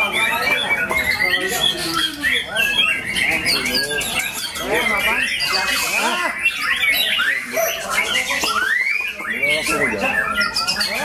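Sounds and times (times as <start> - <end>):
bird singing whistled notes: 0.0 - 11.0
other birds singing: 0.0 - 11.0.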